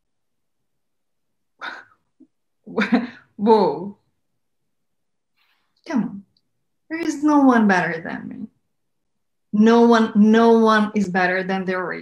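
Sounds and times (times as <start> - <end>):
person laughing: 1.6 - 3.3.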